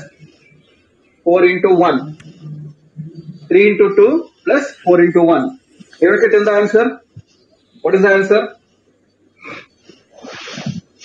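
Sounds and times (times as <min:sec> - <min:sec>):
marker scraping on whiteboard: 0:09.4 - 0:11.0.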